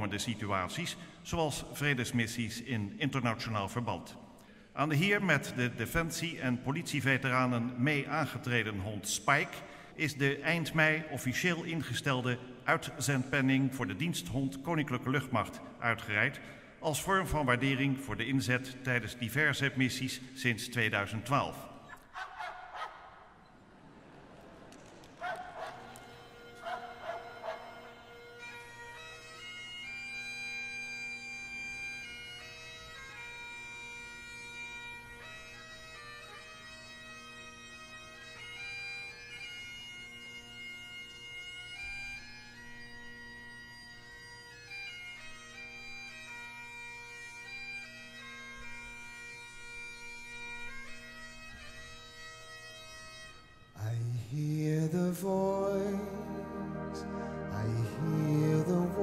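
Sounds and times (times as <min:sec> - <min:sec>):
dog barking: 0:22.2 - 0:23.1, 0:25.2 - 0:25.9, 0:26.6 - 0:28.0
bagpipe playing slow melody: 0:25.8 - 0:59.0.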